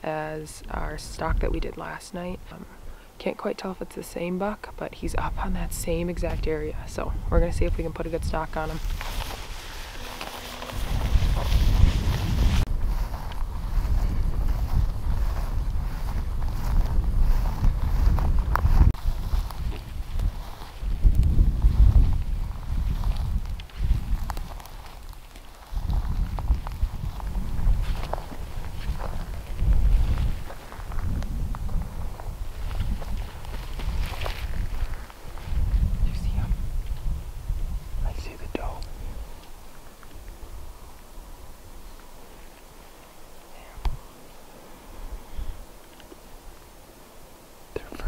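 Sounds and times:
wind buffeting microphone: 0:04.8 - 0:42.0
footsteps in dry grass: 0:05.9 - 0:48.0.

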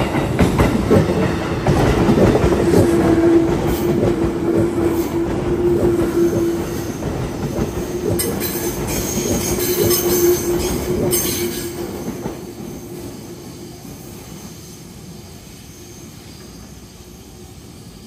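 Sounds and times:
train wheels clattering over rail joints: 0:00.0 - 0:12.7
train wheels squealing: 0:02.6 - 0:18.0.

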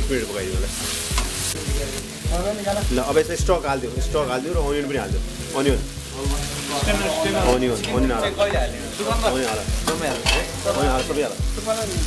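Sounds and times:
vegetables sizzling: 0:00.0 - 0:12.0
metal spatula scraping wok: 0:00.7 - 0:02.0, 0:06.6 - 0:11.4.

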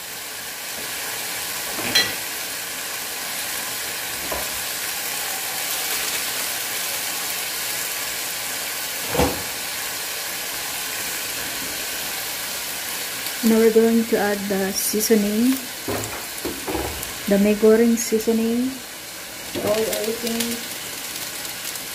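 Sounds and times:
steam hissing: 0:00.0 - 0:21.9
vegetables sizzling in a pan: 0:00.0 - 0:21.9.

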